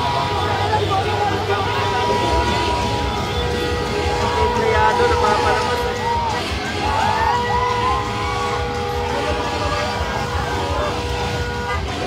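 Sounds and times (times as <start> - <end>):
crowd cheering: 0.0 - 12.0
vehicle horn long blast: 0.0 - 12.0.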